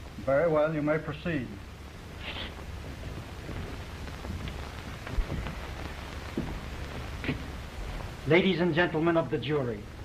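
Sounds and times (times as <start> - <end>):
film soundtrack hiss and crackle: 0.0 - 10.0
low thump: 6.4 - 6.6.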